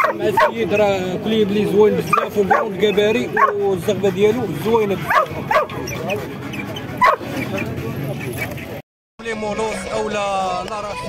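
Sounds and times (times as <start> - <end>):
dog barking: 0.0 - 0.7, 2.0 - 3.6, 5.0 - 5.9, 7.0 - 7.3
people talking: 0.0 - 11.0.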